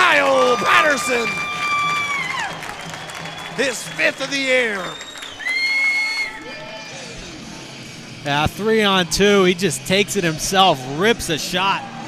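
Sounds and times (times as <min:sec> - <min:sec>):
crowd cheering: 0:00.0 - 0:07.5
high steady whistle tone: 0:02.8 - 0:07.0.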